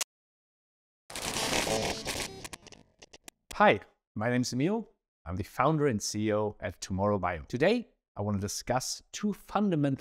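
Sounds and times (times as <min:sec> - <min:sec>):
buzzing glitchy sound effect: 0:01.1 - 0:02.7.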